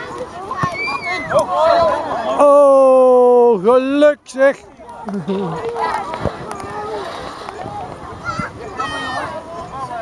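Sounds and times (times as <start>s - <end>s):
chatter of children and adults: 0.0s - 10.0s
child's high-pitched shout: 0.6s - 1.4s, 8.2s - 9.3s.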